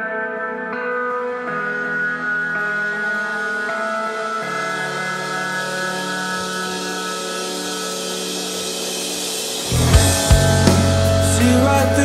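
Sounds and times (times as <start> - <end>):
sustained rock chords: 0.0 - 12.0
drums and full band hit: 6.3 - 12.0.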